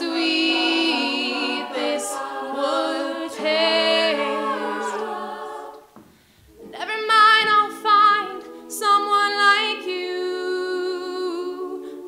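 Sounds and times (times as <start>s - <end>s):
female choir singing in harmony: 0.0s - 6.0s, 6.6s - 12.0s.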